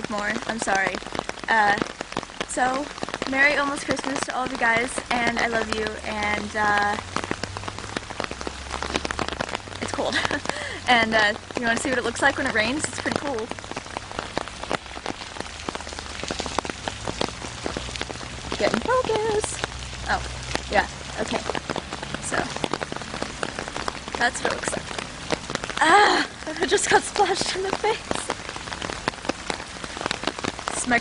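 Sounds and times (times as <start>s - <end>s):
raindrops clicking close by: 0.0s - 31.0s
steady rain: 0.0s - 31.0s.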